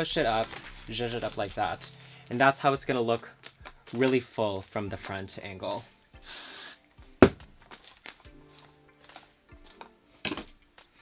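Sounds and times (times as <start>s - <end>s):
faint background music: 0.0s - 11.0s
hairspray hiss: 6.2s - 6.9s.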